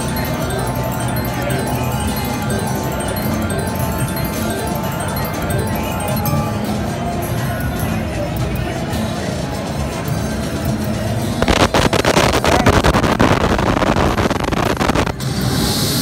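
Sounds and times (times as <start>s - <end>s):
slot machine music: 0.0s - 15.1s
loud rushing crackling noise: 11.4s - 15.7s.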